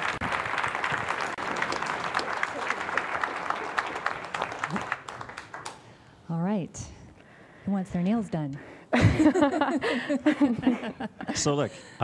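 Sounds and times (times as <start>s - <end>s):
audience applauding: 0.0s - 6.0s.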